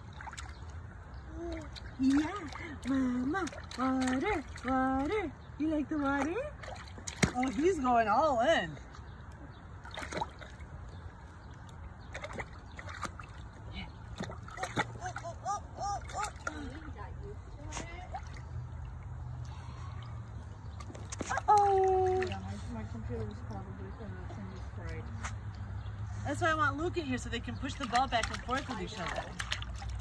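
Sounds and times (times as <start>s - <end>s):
baby's hands splashing water: 0.0s - 5.1s, 12.0s - 16.8s, 27.6s - 30.0s.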